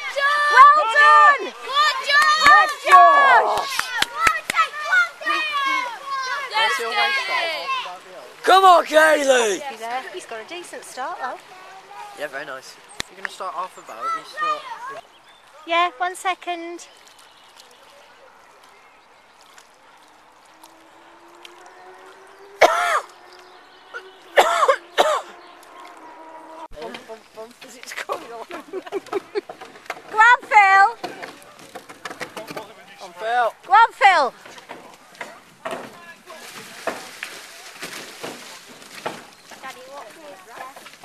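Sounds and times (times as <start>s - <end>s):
spectators shouting encouragement: 0.0s - 9.6s.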